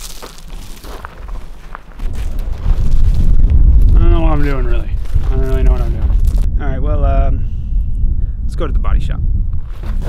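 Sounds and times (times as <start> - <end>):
wind buffeting microphone: 0.9 - 10.0.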